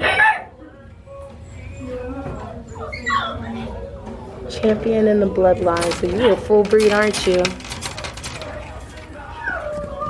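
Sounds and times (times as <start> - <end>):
puppies whimpering: 1.4 - 4.0.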